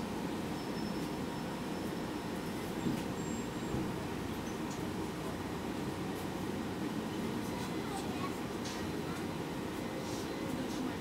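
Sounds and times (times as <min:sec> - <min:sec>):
bus engine and road noise: 0:00.0 - 0:11.0.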